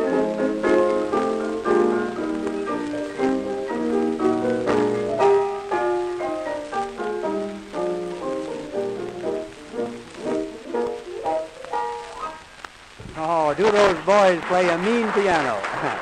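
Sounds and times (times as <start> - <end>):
piano duet dance tune: 0.0 - 15.6
record surface hiss: 0.0 - 16.0.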